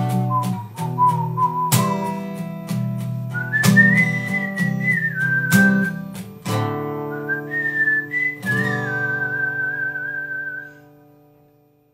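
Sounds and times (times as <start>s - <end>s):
whistled melody: 0.0s - 6.2s, 6.8s - 11.0s
acoustic guitar chords: 0.0s - 11.9s.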